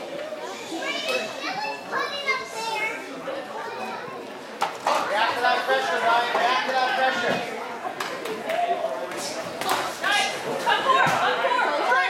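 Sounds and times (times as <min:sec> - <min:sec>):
crowd chatter in echoing hall: 0:00.0 - 0:12.0.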